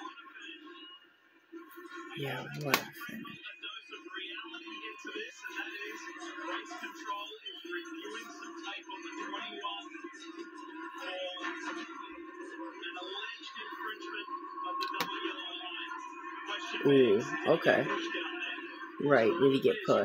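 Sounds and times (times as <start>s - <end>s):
television music: 0.0s - 20.0s
voices talking on television: 0.0s - 20.0s.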